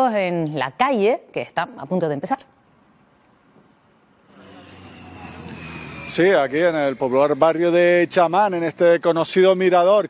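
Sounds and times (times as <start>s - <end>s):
outdoor rumble: 4.2s - 9.0s
low hum: 4.2s - 9.1s.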